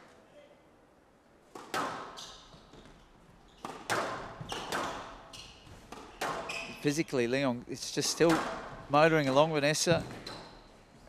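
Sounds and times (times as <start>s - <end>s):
squash ball hits: 1.5s - 2.2s, 3.6s - 6.6s, 8.2s - 8.8s
shoes squeaking on court: 2.1s - 7.1s, 9.3s - 11.0s.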